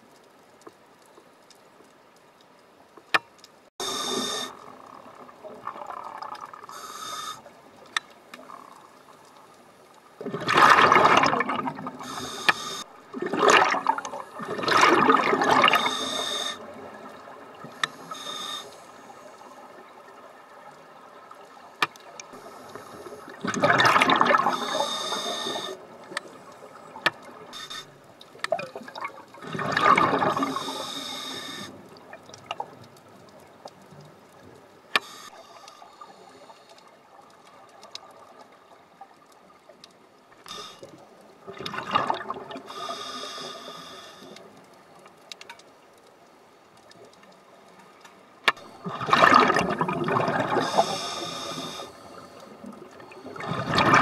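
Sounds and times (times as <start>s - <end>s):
faint clicks: 0.0s - 54.0s
diver breathing through regulator: 6.7s - 7.5s, 12.0s - 12.9s, 15.7s - 16.7s, 17.8s - 19.2s, 24.4s - 25.8s, 30.4s - 31.8s, 42.7s - 44.4s, 50.5s - 53.8s
exhaled bubbles bursting underwater: 10.2s - 12.0s, 13.1s - 16.0s, 23.3s - 24.8s, 28.5s - 30.8s, 41.5s - 42.6s, 48.8s - 51.0s, 52.6s - 54.0s.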